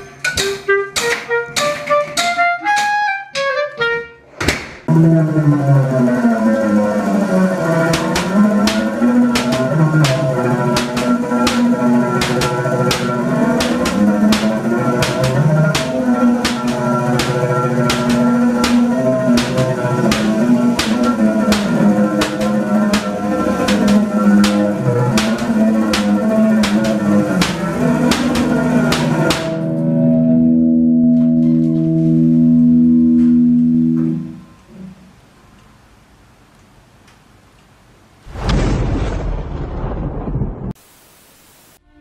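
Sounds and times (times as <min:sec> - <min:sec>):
held chord: 0:04.9 - 0:34.7.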